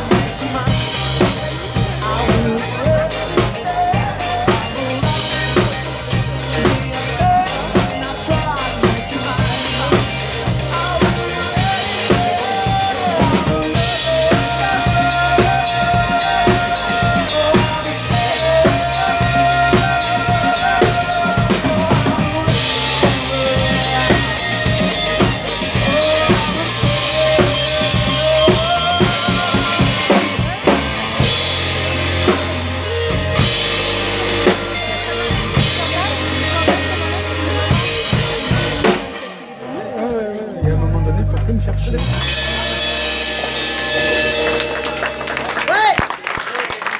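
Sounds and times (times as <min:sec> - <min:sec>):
drum kit: 0:00.0 - 0:39.4, 0:41.2 - 0:46.9
electric guitar: 0:00.0 - 0:46.6
bass guitar: 0:00.0 - 0:46.9.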